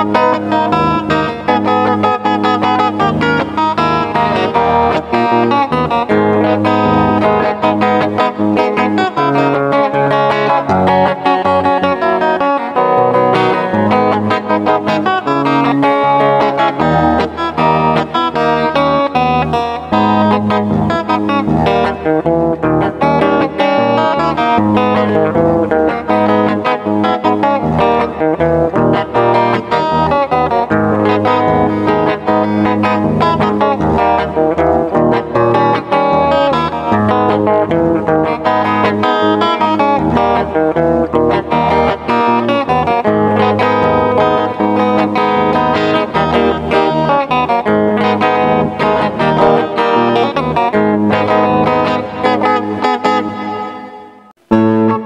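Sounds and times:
fingerstyle electric guitar: 0.0s - 55.0s.

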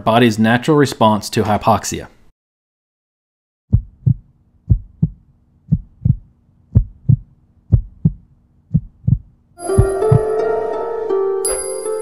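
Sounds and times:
heartbeat thumps: 3.7s - 10.3s
music with bright sustained tones: 9.6s - 12.0s.

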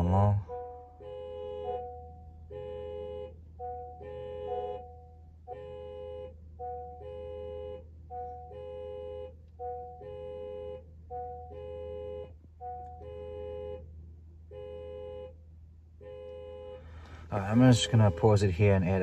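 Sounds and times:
two-tone electronic warning chime: 0.0s - 13.8s, 16.6s - 19.0s.

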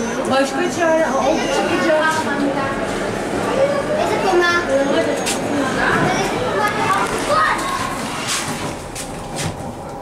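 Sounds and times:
children's voices chattering: 0.0s - 8.3s.

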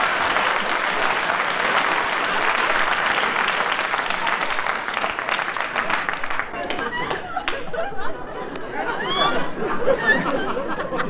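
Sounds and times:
audience murmuring: 0.0s - 11.0s
audience laughing: 5.8s - 11.0s.

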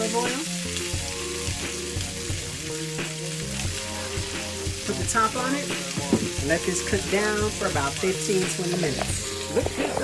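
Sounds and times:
oil sizzling in a frying pan: 0.0s - 10.0s.

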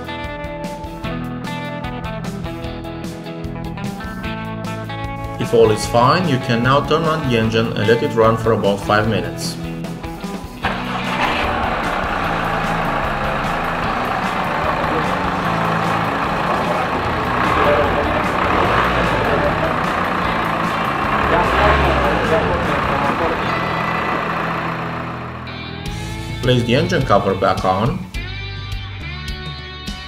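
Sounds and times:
diesel engine running: 5.0s - 28.2s.

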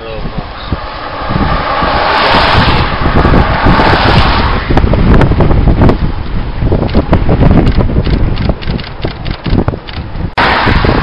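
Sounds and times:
wind buffeting microphone: 0.0s - 11.0s
car tyres hissing on wet road: 0.2s - 4.7s, 10.4s - 11.0s.

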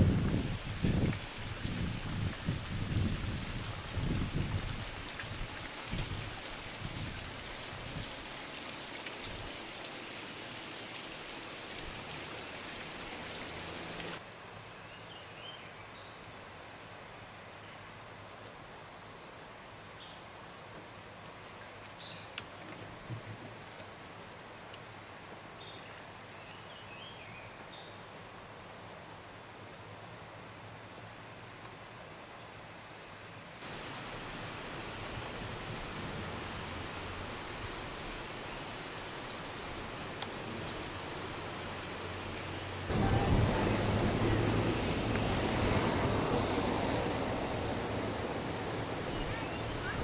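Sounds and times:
insect chirps: 0.0s - 42.9s
faint hiss: 0.0s - 50.0s
rushing noise with low rumble: 42.8s - 50.0s.

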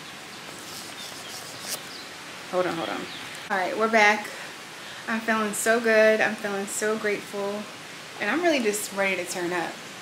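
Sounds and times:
steady outdoor hiss: 0.0s - 10.0s
brief rustle: 0.5s - 2.0s.

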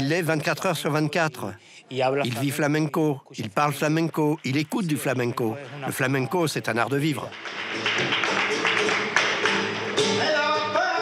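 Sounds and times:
hand clapping: 4.1s - 10.4s
dancer's shoes striking stage: 7.4s - 10.2s
guitar: 7.4s - 11.0s.

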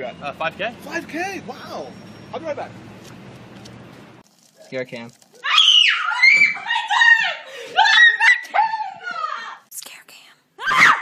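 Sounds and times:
loud vocal cry: 5.4s - 9.6s, 10.6s - 11.0s.

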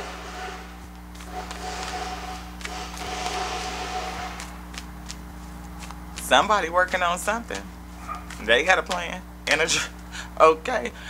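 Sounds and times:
machine whine: 0.0s - 8.5s
machinery hum: 0.0s - 11.0s.

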